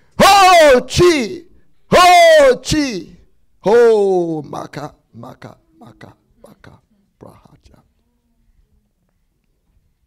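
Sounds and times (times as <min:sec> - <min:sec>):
man whispering: 0:05.2 - 0:08.1.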